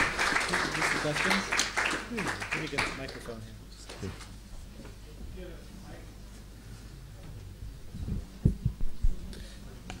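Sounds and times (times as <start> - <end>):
low room hum: 0.0 - 10.0
dull low thumps: 8.0 - 9.2.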